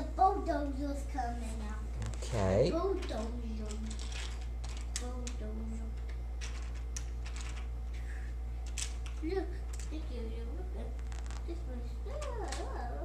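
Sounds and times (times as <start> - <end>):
steady low hum: 0.0 - 13.0
wooden toy track pieces clacking: 3.7 - 5.4, 6.4 - 7.7, 8.6 - 9.9.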